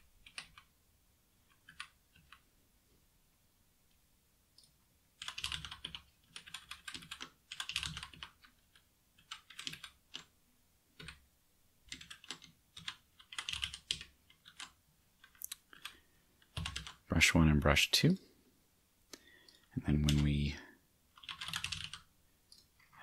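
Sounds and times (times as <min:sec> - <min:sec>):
typing on computer keyboard: 0:00.2 - 0:00.7, 0:01.4 - 0:02.4, 0:05.2 - 0:10.3, 0:11.0 - 0:11.2, 0:11.9 - 0:17.0, 0:21.1 - 0:22.7.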